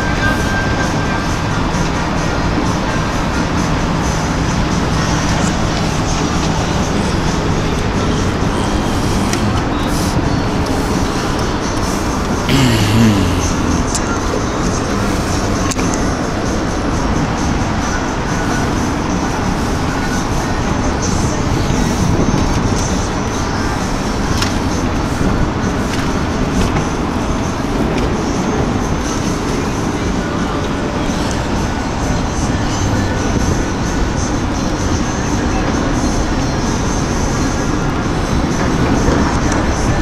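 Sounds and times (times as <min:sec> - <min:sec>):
road traffic noise: 0:00.0 - 0:40.0.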